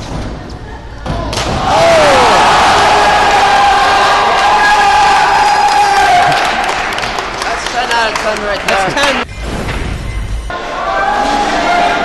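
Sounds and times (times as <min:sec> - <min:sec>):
crowd cheering and yelling: 0:01.6 - 0:08.9, 0:10.5 - 0:12.0.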